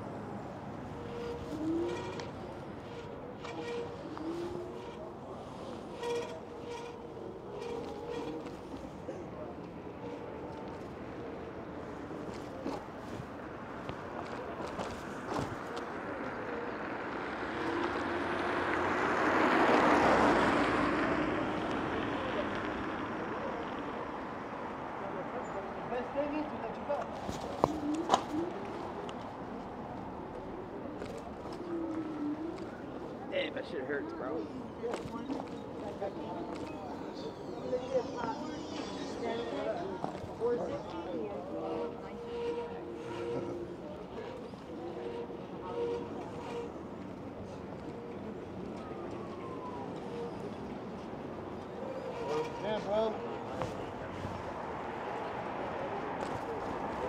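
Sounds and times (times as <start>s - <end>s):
road noise: 0.0s - 57.0s.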